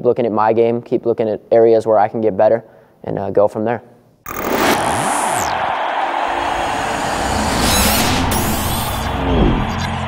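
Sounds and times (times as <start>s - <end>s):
sudden loud rush: 4.3s - 10.0s
whooshing roar with sweeping tones: 4.3s - 10.0s.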